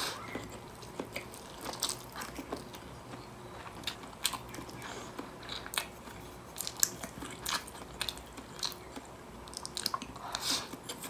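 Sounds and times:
chewing and wet mouth sounds: 0:00.0 - 0:11.0.

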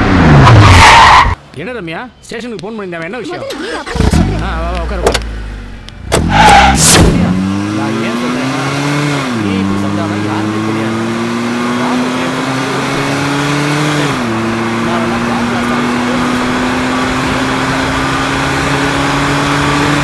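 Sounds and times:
jeep engine accelerating: 0:03.5 - 0:20.0.

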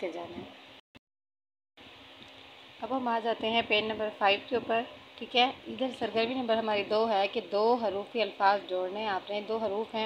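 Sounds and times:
faint room hum: 0:01.8 - 0:10.0.

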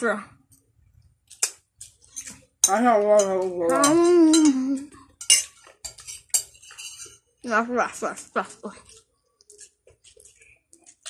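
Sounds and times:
metal spoon clinking on a plate: 0:01.3 - 0:07.2.

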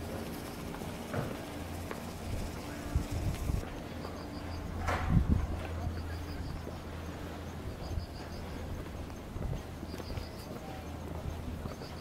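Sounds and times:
footsteps on pavement: 0:00.0 - 0:12.0.

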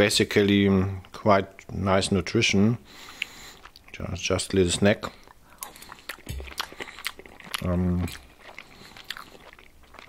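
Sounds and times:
chewing: 0:03.0 - 0:04.1, 0:05.0 - 0:10.0.

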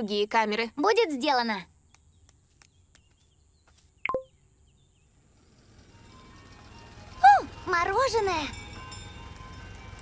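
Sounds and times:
faint bird chirps: 0:01.6 - 0:05.4.

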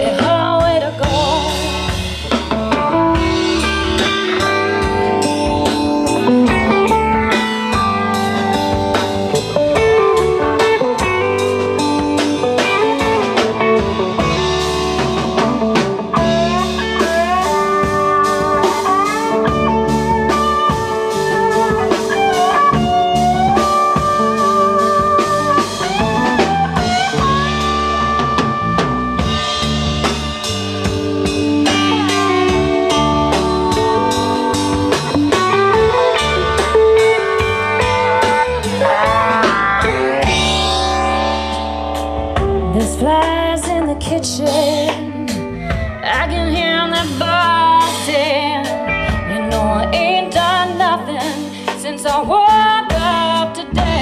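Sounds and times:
bass line: 0:00.0 - 0:54.0
drum kit: 0:00.0 - 0:54.0
lead guitar bending notes: 0:00.0 - 0:54.0.

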